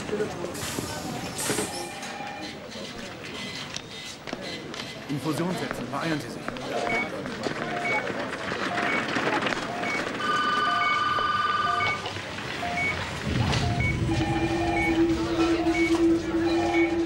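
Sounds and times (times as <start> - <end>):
patient monitor two-tone beeping: 1.7 - 2.6, 6.8 - 17.0
multi-note alarm tone: 9.7 - 12.0, 12.6 - 17.0.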